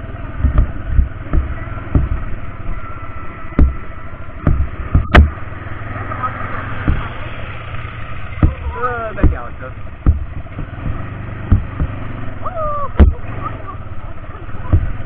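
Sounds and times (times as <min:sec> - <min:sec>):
atv engine running: 0:00.0 - 0:15.0
sharp knocks from bumps: 0:00.3 - 0:02.5, 0:03.5 - 0:05.5, 0:06.7 - 0:12.3, 0:13.0 - 0:13.4, 0:14.6 - 0:15.0.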